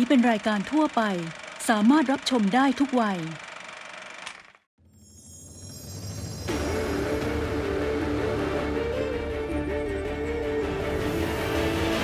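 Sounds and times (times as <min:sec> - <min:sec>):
announcer speaking: 0:00.0 - 0:03.4.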